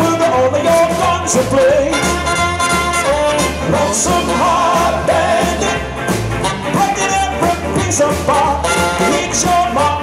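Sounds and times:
rock band playing: 0:00.0 - 0:10.0
saxophone melody: 0:01.8 - 0:04.6, 0:05.6 - 0:07.4, 0:08.4 - 0:09.5.

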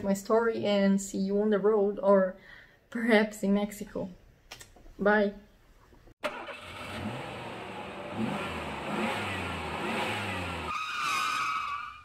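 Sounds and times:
road noise: 0:06.2 - 0:12.0
vehicle engine accelerating: 0:06.3 - 0:10.7.

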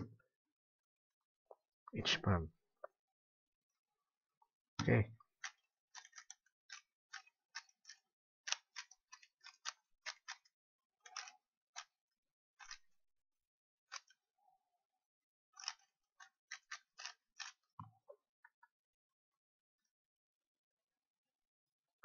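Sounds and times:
speed cube layers clicking: 0:04.8 - 0:10.5, 0:11.1 - 0:12.0, 0:12.6 - 0:12.9, 0:15.6 - 0:17.6.

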